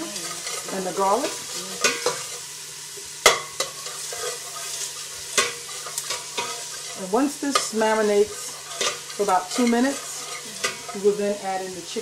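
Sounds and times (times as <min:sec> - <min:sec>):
onions sizzling in a pot: 0:00.0 - 0:12.0
spoon scraping and knocking pot: 0:03.2 - 0:11.0.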